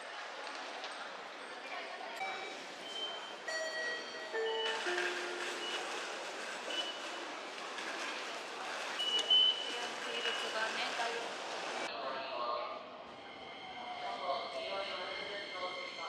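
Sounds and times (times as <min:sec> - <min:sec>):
moving crowd: 0:00.0 - 0:11.9
ticket gate beeps: 0:02.2 - 0:07.2, 0:09.0 - 0:10.6.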